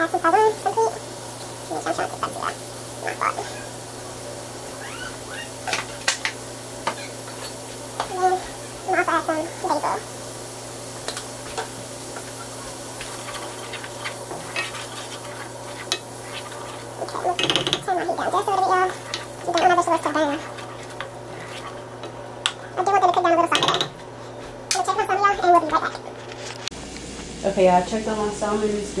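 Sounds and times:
person speaking: 0:00.0 - 0:01.0, 0:01.7 - 0:03.8, 0:08.0 - 0:10.1, 0:14.9 - 0:21.8, 0:22.6 - 0:24.0, 0:24.7 - 0:26.2
vegetables sizzling: 0:00.0 - 0:29.0
wooden spoon scraping a pan: 0:10.9 - 0:26.7.

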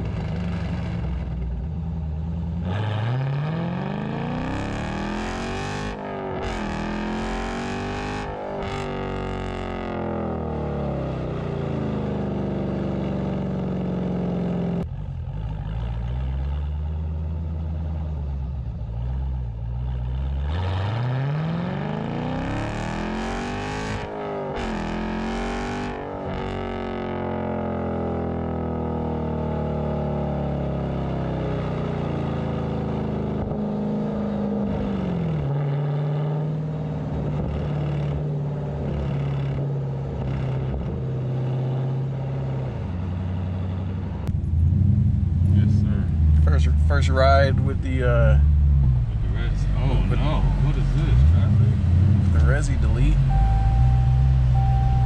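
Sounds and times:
car exhaust revving: 0:00.0 - 0:55.0.

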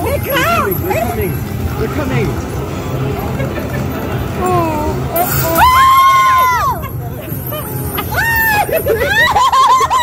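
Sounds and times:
crowd chatter: 0:00.0 - 0:10.0
woman squealing excitedly: 0:05.4 - 0:06.9, 0:07.6 - 0:10.0.

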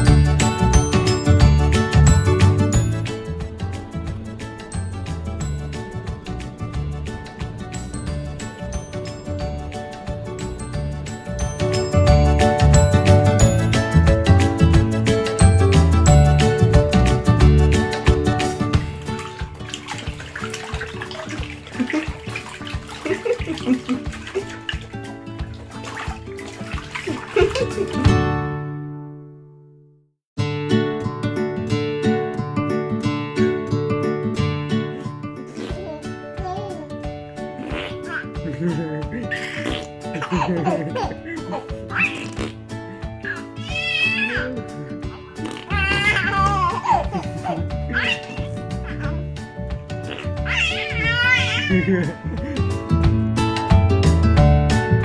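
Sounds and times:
background music: 0:00.0 - 0:29.6, 0:30.4 - 0:55.0
water sloshing in plastic bathtub: 0:17.9 - 0:28.2, 0:39.2 - 0:49.4
baby squealing and giggling: 0:35.5 - 0:37.0, 0:37.6 - 0:38.5, 0:39.2 - 0:42.6, 0:43.2 - 0:49.3, 0:50.0 - 0:52.3.

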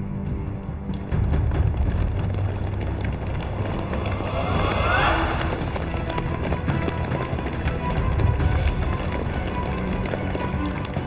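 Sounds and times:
rising whoosh: 0:03.2 - 0:06.2.

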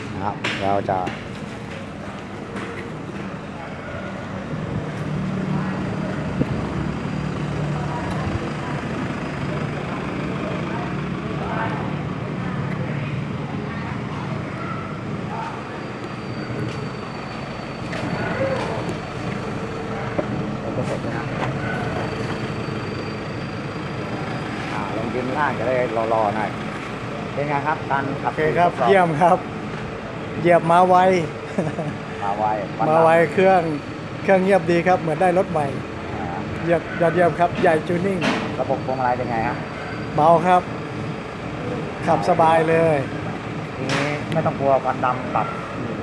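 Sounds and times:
faint voices: 0:00.0 - 0:40.8
diesel engine idling: 0:00.0 - 0:46.0.

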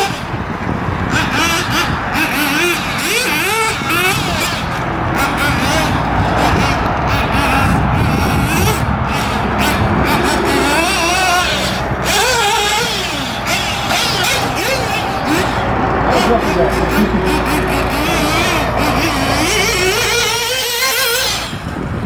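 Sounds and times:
nitro engine revving: 0:00.0 - 0:22.0.

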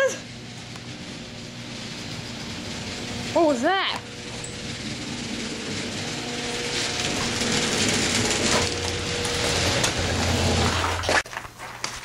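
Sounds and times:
motorized garage door running: 0:00.0 - 0:11.2.

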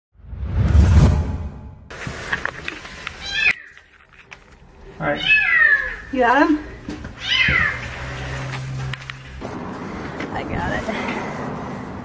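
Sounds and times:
whoosh: 0:00.2 - 0:01.9
cat meowing: 0:03.2 - 0:03.8, 0:05.0 - 0:06.1, 0:07.2 - 0:07.9.

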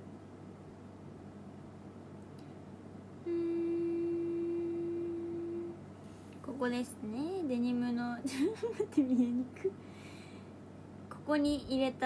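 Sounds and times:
steady tone: 0:03.2 - 0:05.8.

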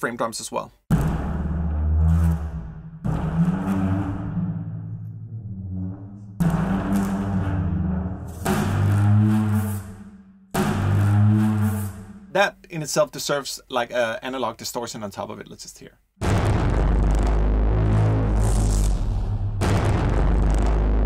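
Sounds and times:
low pitched frame drum drags: 0:00.9 - 0:12.4, 0:16.2 - 0:21.0.

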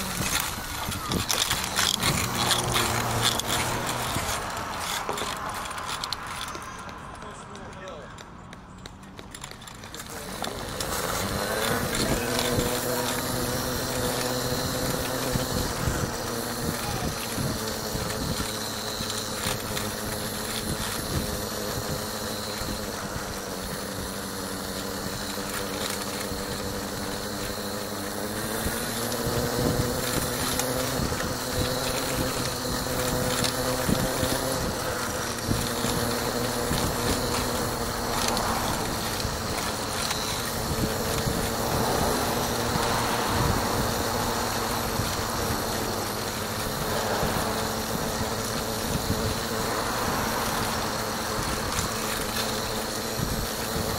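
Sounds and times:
vehicle engine running: 0:00.0 - 0:53.9.

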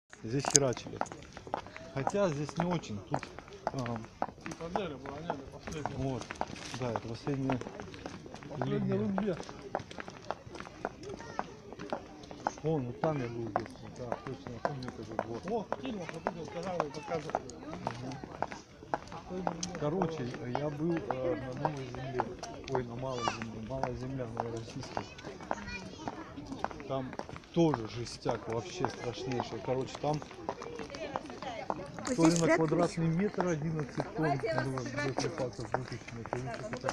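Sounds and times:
faint voices: 0:00.1 - 0:36.9
footsteps on pavement: 0:00.1 - 0:36.9.

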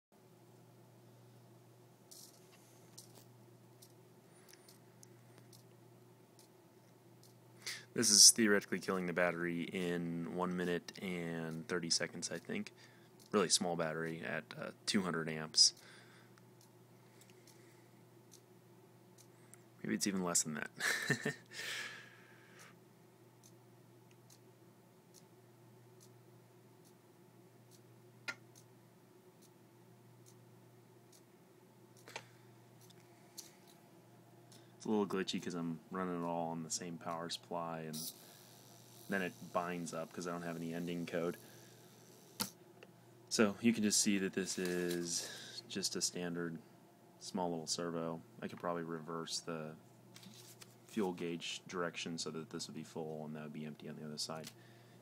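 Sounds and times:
low steady hum: 0:00.2 - 0:55.0
servo faint ticks: 0:02.1 - 0:05.8, 0:10.9 - 0:12.6, 0:23.4 - 0:24.5, 0:26.0 - 0:26.2, 0:30.2 - 0:30.4
servo clicking: 0:37.9 - 0:42.6
sharp servo click: 0:42.0 - 0:42.6.

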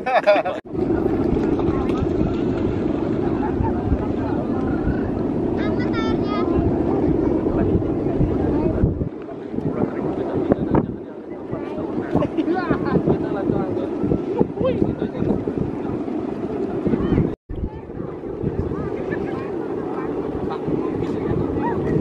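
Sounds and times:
kite hummer low drone: 0:00.0 - 0:22.0
wind buffeting microphone: 0:00.0 - 0:22.0.

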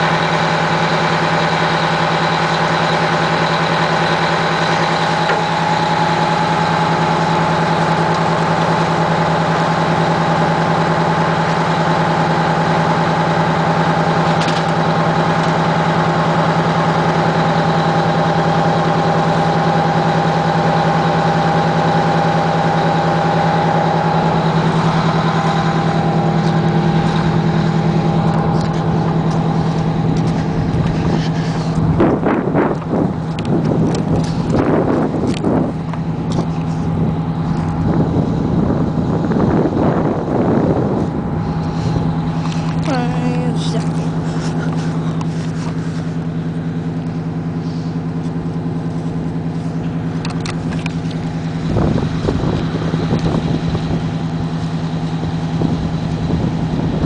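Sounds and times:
fire engine engine running: 0:00.0 - 0:57.0.

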